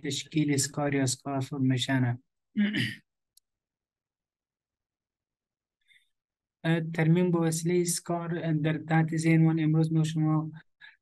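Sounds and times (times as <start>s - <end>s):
man speaking: 0.0s - 2.9s, 6.7s - 10.7s.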